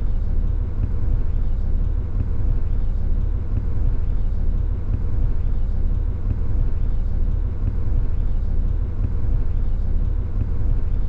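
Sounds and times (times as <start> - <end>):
faint constant hum: 0.0 - 11.0.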